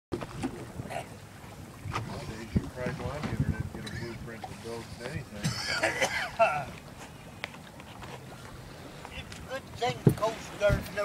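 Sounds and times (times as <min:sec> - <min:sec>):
water splashing against boat: 0:00.1 - 0:11.0
wind: 0:00.1 - 0:11.0.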